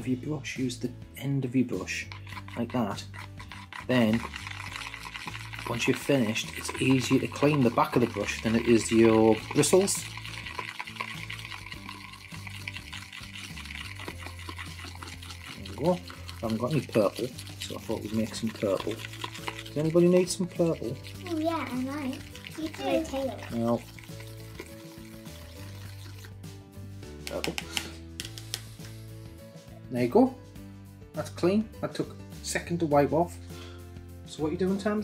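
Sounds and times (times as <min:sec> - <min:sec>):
soft background music: 0:00.0 - 0:35.0
wet paint stirring: 0:01.5 - 0:29.7.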